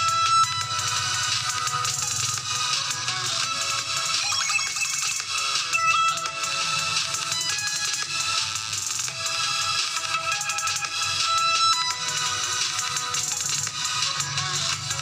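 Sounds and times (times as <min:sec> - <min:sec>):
electronic dance music from phone speaker: 0:00.0 - 0:15.0.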